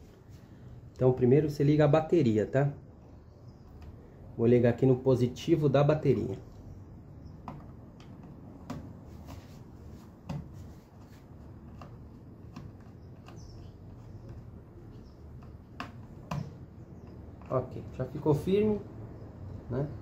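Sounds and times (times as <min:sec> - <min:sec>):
low steady background noise: 0:00.0 - 0:20.0.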